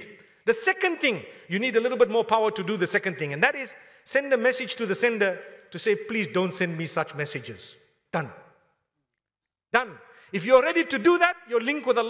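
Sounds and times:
man speaking: 0:00.0 - 0:08.5, 0:09.7 - 0:12.0.

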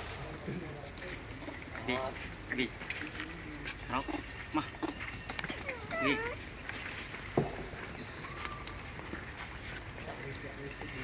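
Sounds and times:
macaques squeaking and chirping: 0:03.9 - 0:06.8
macaque wavering squeal: 0:05.3 - 0:06.4.

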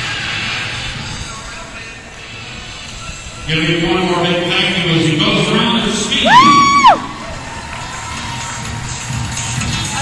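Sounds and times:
crowd cheering: 0:05.2 - 0:10.0
high-pitched whoop: 0:06.2 - 0:07.8.

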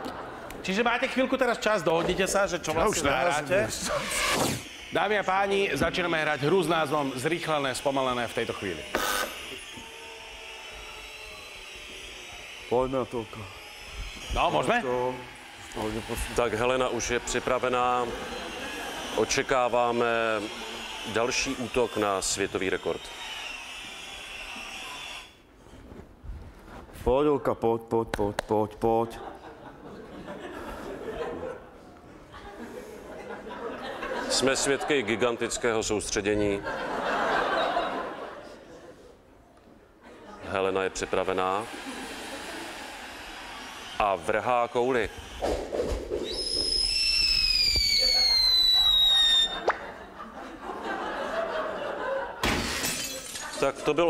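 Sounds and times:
quick upward whistle: 0:02.8 - 0:07.2, 0:45.4 - 0:49.9
long falling whistle: 0:03.1 - 0:25.4, 0:46.1 - 0:49.9.

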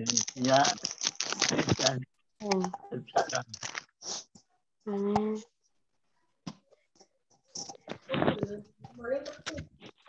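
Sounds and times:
indistinct speech over video call: 0:00.0 - 0:00.9
crackling and rustling noise: 0:00.0 - 0:02.1, 0:03.2 - 0:04.3, 0:07.0 - 0:10.0.

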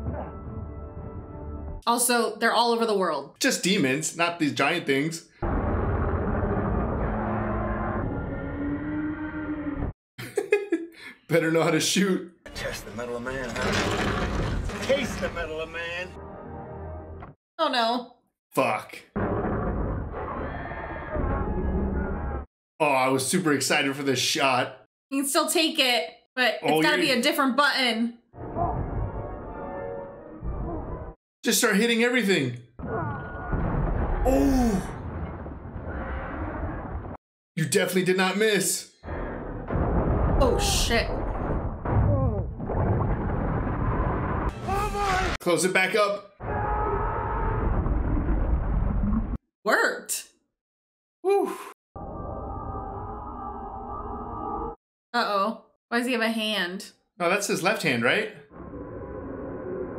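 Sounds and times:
deep rumbling monster roar: 0:05.4 - 0:09.9, 0:13.4 - 0:15.4, 0:46.4 - 0:49.4, 0:58.5 - 0:59.9.

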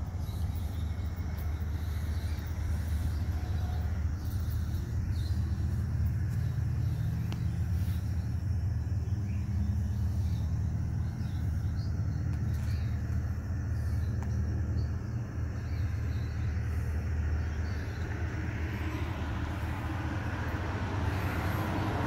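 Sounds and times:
steady low rumble: 0:00.0 - 0:22.0.

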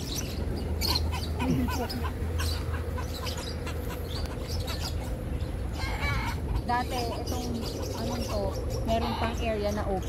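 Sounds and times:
birds chirping: 0:00.0 - 0:10.0
steady low rumble: 0:00.0 - 0:10.0.

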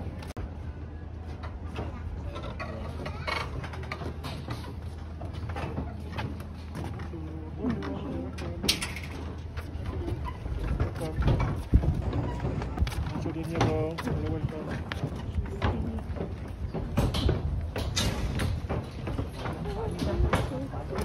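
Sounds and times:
people talking: 0:07.1 - 0:08.8, 0:13.1 - 0:16.2, 0:19.6 - 0:21.0.

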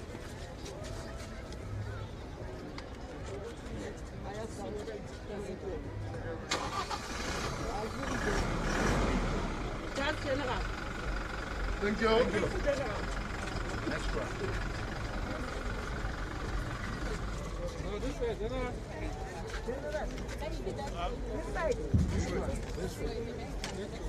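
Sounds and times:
voices: 0:00.0 - 0:24.0
van engine starting and idling: 0:06.5 - 0:17.2.

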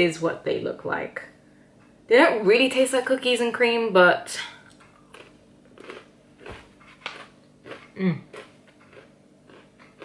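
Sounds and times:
person chewing crunchy pretzel: 0:04.7 - 0:10.0.

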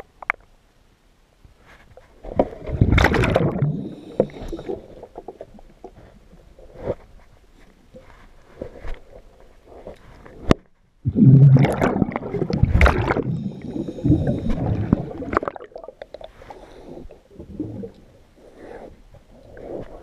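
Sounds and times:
underwater air bubbles rushing: 0:02.5 - 0:06.0, 0:11.0 - 0:16.4.

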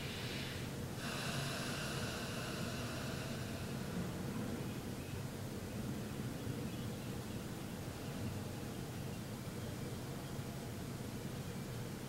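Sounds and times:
person breathing through nose: 0:00.0 - 0:04.5
low room hum: 0:00.0 - 0:12.0.

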